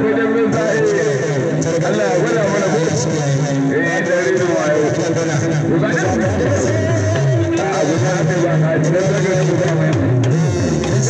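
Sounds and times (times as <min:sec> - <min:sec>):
person singing or chanting: 0:05.7 - 0:11.0.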